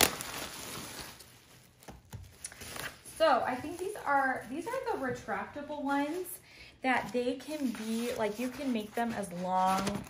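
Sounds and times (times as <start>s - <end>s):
bubble wrap crinkling: 0.0s - 10.0s.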